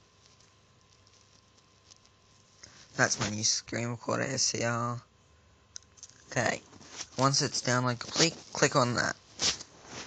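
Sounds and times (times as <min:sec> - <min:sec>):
person speaking: 0:02.6 - 0:05.1, 0:06.2 - 0:09.6.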